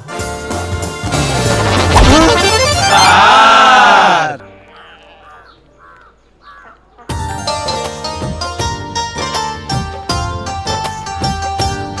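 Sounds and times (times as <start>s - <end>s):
faint short bird calls: 4.6s - 7.1s.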